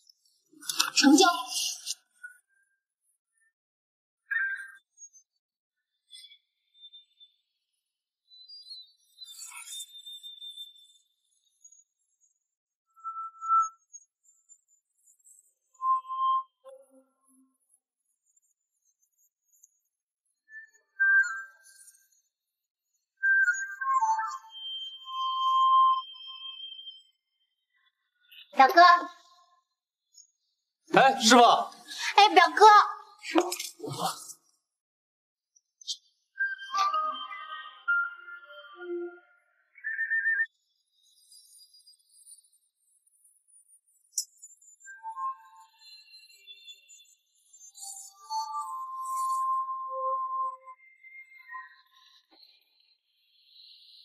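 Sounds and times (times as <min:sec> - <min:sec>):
trilled whistle: 0:23.2 - 0:28.5.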